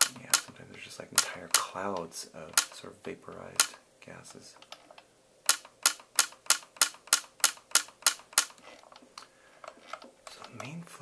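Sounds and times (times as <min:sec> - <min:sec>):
laser firing sharp clicks: 0:05.5 - 0:08.5.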